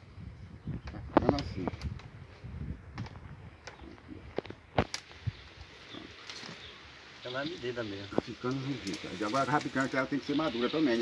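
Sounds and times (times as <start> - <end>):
stems clicking and cracking: 0.8 - 2.2, 2.9 - 6.7, 8.1 - 11.0.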